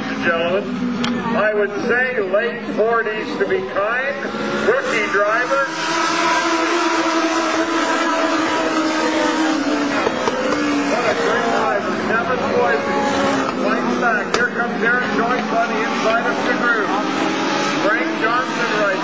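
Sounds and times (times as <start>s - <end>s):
race car engines: 0.0s - 19.0s.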